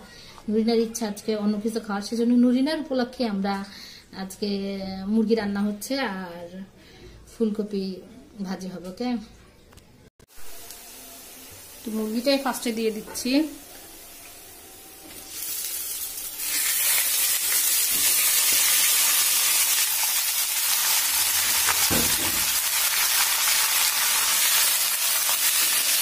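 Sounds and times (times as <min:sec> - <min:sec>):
chicken sizzling in hot oil: 0:10.3 - 0:26.0.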